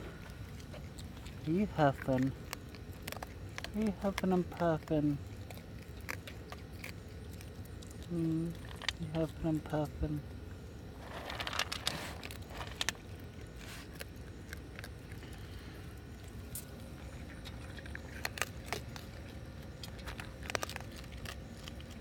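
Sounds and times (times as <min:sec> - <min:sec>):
kibble crunching: 0:00.0 - 0:22.0
rustling: 0:11.0 - 0:22.0.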